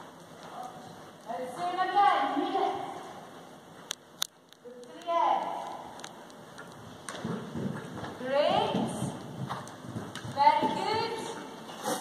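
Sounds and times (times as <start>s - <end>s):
horses' hooves on sand: 5.0s - 12.0s.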